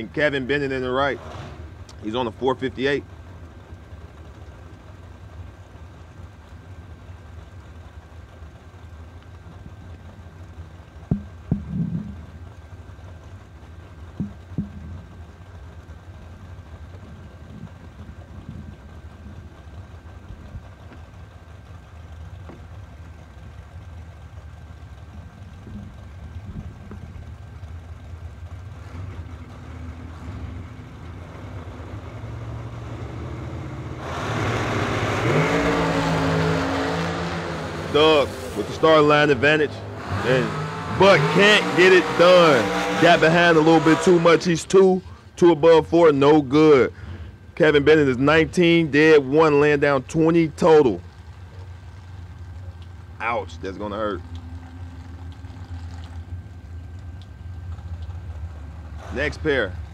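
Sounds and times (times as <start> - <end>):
dragster engines revving: 0.0 - 59.9.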